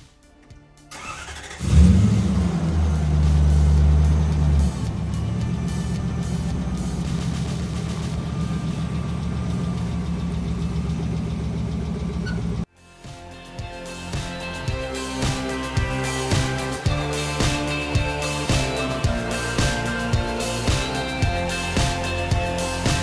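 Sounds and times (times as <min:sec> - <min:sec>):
car engine starting and idling: 0:00.0 - 0:12.7, 0:13.8 - 0:23.0.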